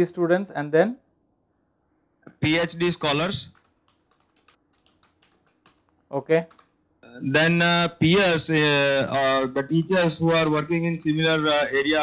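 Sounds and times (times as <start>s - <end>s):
typing on keyboard: 3.5s - 6.8s.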